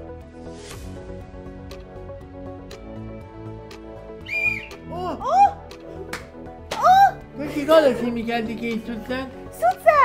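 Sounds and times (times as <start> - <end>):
background music: 0.0 - 10.0
shrill whistle blast: 4.2 - 4.8.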